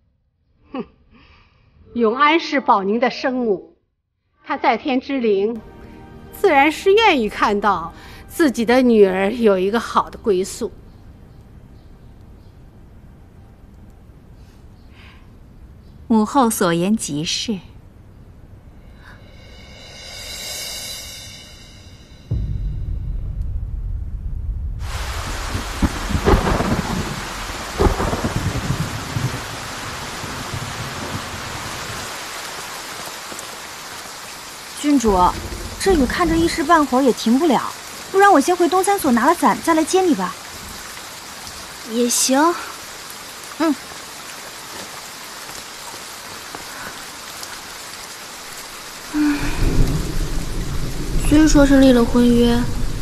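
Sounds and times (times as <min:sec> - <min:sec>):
heavy rain: 0:05.6 - 0:10.8, 0:18.8 - 0:53.0
deep rumble of thunder: 0:22.3 - 0:32.1, 0:34.8 - 0:39.4, 0:49.0 - 0:53.0.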